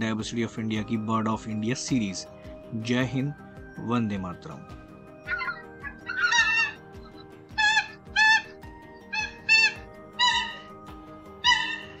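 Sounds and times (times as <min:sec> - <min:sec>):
background music: 0:00.0 - 0:12.0
coot calling: 0:05.2 - 0:12.0.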